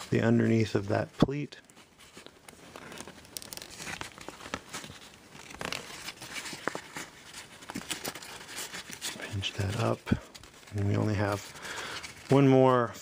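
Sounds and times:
paper crinkling and rustling: 0:00.0 - 0:13.0.

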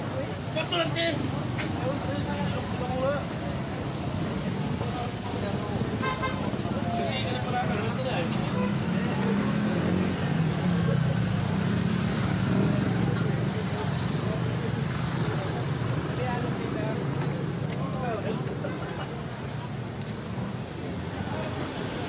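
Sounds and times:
crowd chatter: 0:00.0 - 0:22.0
low rumble of road traffic: 0:00.0 - 0:22.0.

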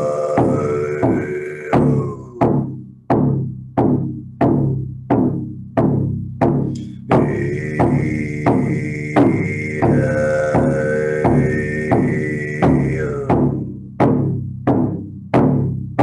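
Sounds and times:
didgeridoo drone: 0:00.0 - 0:02.9, 0:06.0 - 0:14.2
drum beaten steadily: 0:00.0 - 0:16.0.

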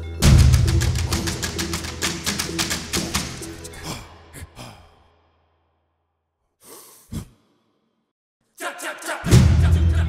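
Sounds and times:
person sighing: 0:03.7 - 0:05.2, 0:06.6 - 0:07.3.

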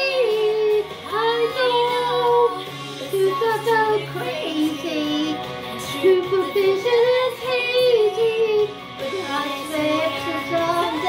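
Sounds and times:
high voice singing with vibrato: 0:00.0 - 0:11.0.

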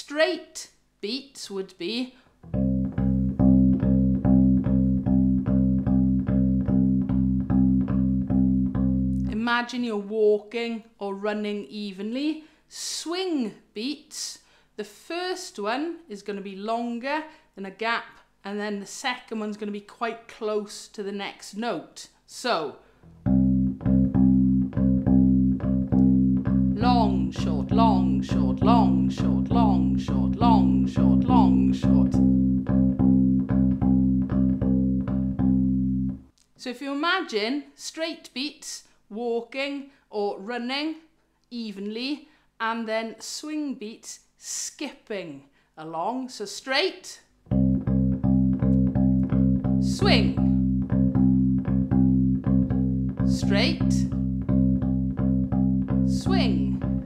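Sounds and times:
bass ukulele plucked: 0:02.4 - 0:09.4, 0:23.1 - 0:36.3, 0:47.5 - 0:57.0
person vocalizing: 0:26.7 - 0:32.2, 0:49.8 - 0:50.6, 0:56.1 - 0:56.8.

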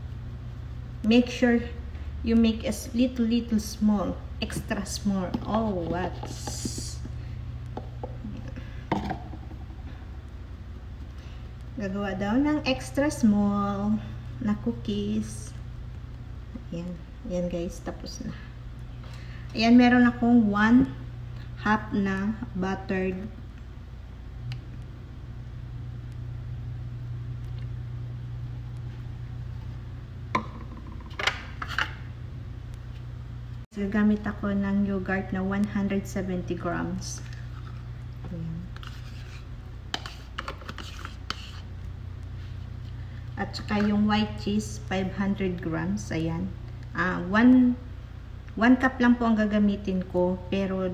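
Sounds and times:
steady low hum: 0:00.0 - 0:50.9.

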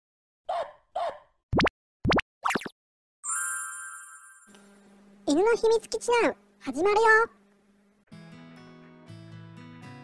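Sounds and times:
cartoon plops: 0:01.5 - 0:02.7
shimmering chime: 0:03.2 - 0:04.5.

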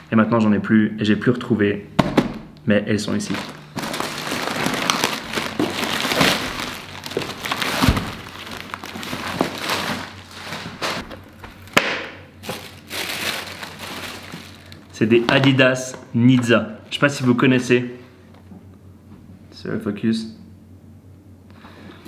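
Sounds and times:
plastic bag crinkling: 0:03.1 - 0:11.7, 0:12.4 - 0:15.5
paper rustling: 0:03.3 - 0:11.2, 0:12.4 - 0:14.8.

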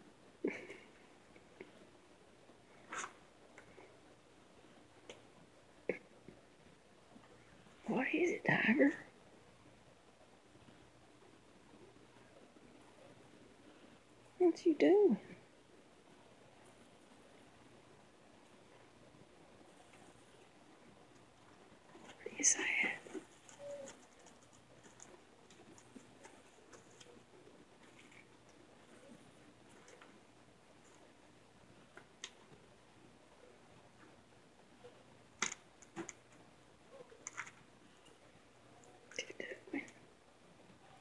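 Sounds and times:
faint hum: 0:00.0 - 0:41.0
person whispering: 0:07.8 - 0:09.1, 0:22.1 - 0:24.0, 0:39.1 - 0:40.0.

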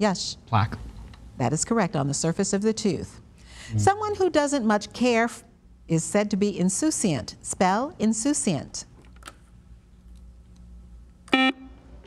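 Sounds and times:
quiz-show buzzer: 0:11.3 - 0:11.8.

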